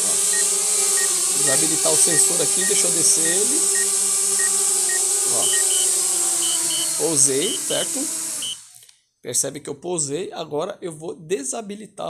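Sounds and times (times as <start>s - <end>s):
drone propellers humming: 0.0s - 8.5s
obstacle warning beeping: 0.3s - 8.6s
higher double beep: 5.4s - 5.9s.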